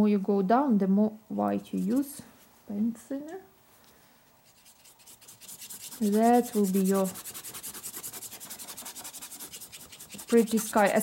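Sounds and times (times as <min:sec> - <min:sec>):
paintbrush scrubbing paint: 0:01.7 - 0:02.3, 0:04.3 - 0:11.0.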